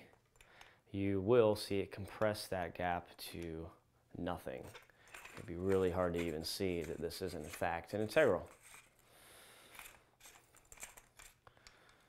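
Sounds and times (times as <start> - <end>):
metal tube rubbing on threads: 4.7 - 9.0.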